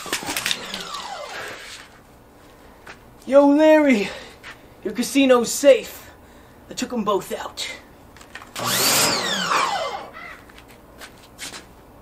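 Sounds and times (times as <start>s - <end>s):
pressure washer motor: 0.0s - 2.0s, 8.6s - 10.3s.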